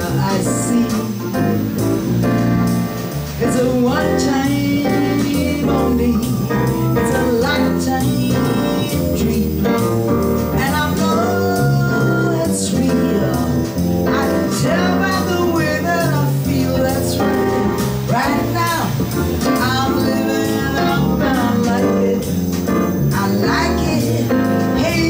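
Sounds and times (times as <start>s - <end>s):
electric bass guitar: 0.0s - 25.0s
live band: 0.0s - 25.0s
woman singing jazz: 0.0s - 25.0s.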